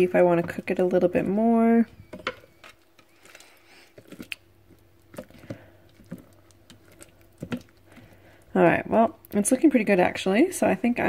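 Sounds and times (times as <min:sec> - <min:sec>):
squishy food being stirred: 0:00.0 - 0:11.0.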